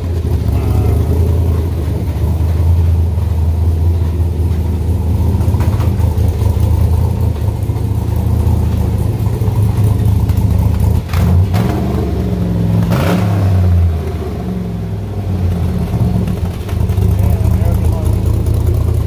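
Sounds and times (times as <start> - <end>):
car engine idling: 0.0 - 19.0
car engine revving: 0.0 - 19.0.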